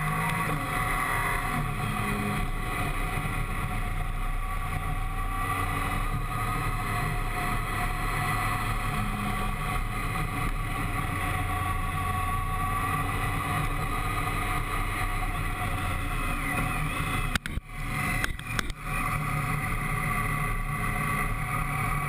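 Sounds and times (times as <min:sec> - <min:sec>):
motorcycle engine running: 0:00.0 - 0:22.0.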